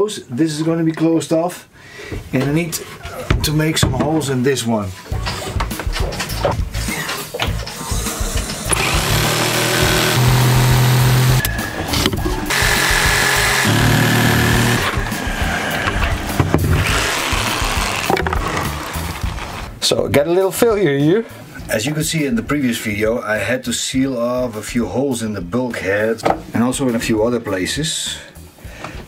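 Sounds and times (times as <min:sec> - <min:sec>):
background music: 0:03.5 - 0:29.0
jigsaw cutting wood: 0:07.9 - 0:11.4, 0:12.0 - 0:19.7.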